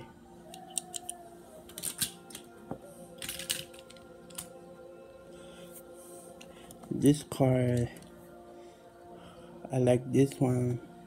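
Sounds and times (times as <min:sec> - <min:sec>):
faint background music: 0:00.0 - 0:11.0
toy cars clicking and rustling: 0:00.6 - 0:02.5, 0:03.2 - 0:04.5.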